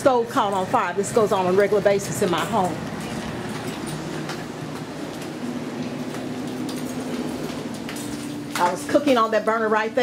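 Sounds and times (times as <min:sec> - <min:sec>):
machine running with low hum: 0:00.0 - 0:10.0.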